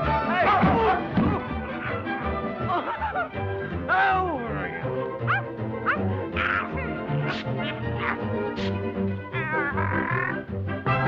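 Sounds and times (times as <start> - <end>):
orchestral cartoon music: 0.0 - 11.0
quickly rising yelps: 5.2 - 8.8.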